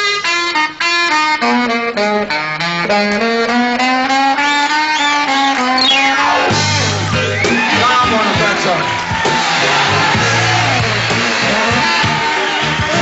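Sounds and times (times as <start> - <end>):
saxophone solo: 0.0 - 13.0.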